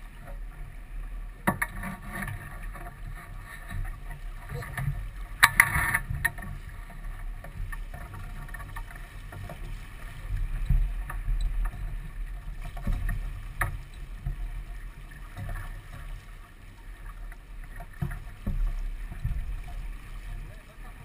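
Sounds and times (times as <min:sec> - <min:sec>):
water rushing along hull: 0:00.0 - 0:21.0.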